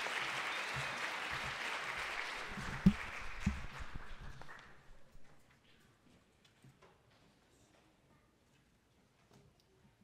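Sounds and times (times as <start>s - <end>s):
audience applause: 0.0s - 5.1s.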